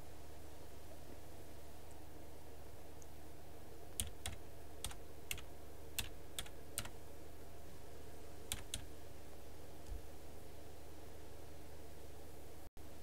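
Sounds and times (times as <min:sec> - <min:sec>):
steady low hum: 0:00.0 - 0:13.0
keyboard keystrokes: 0:04.0 - 0:06.9, 0:08.5 - 0:08.9.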